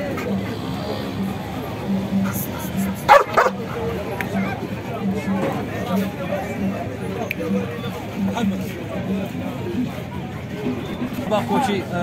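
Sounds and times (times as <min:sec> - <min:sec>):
dog barking sharply: 0:03.1 - 0:03.6.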